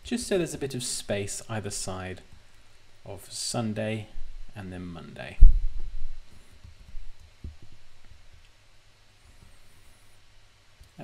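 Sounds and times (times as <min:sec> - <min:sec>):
faint low thumps: 0:05.2 - 0:08.3.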